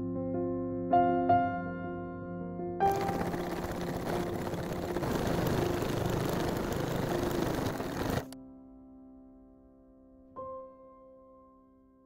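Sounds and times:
needle stitching through canvas: 2.8 - 8.4
sewing machine running: 2.8 - 8.4.

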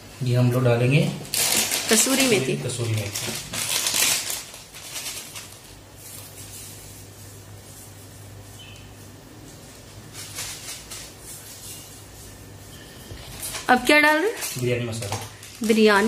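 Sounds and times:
foil packet crinkling: 1.2 - 8.8, 13.2 - 16.0
dry leaves rustling: 1.3 - 12.4, 13.2 - 16.0.

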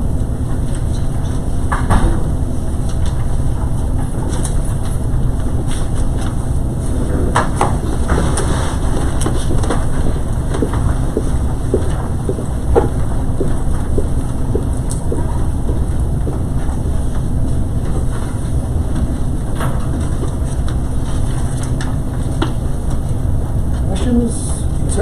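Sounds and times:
low room rumble: 0.0 - 25.0.

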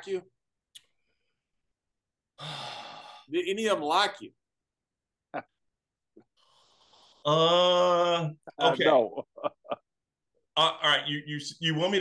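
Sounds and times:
man sighing heavily: 2.4 - 3.3
man talking: 7.3 - 9.5, 10.6 - 12.0.

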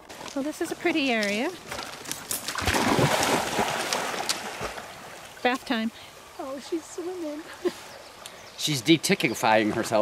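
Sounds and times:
dog splashing and swimming: 0.8 - 5.3.

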